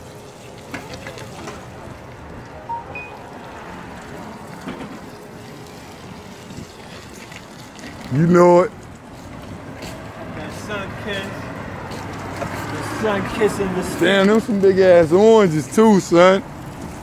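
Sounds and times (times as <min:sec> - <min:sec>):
faint beeps: 0:02.7 - 0:03.3.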